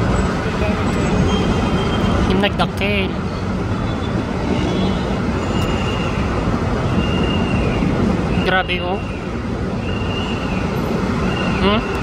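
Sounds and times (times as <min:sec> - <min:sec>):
low rumble of road traffic: 0:00.0 - 0:12.0.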